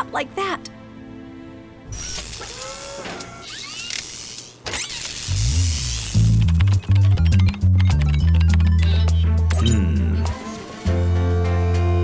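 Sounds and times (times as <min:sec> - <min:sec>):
low pulsing music: 0:00.0 - 0:02.0, 0:06.2 - 0:12.0
mechanical whirring: 0:01.9 - 0:08.9.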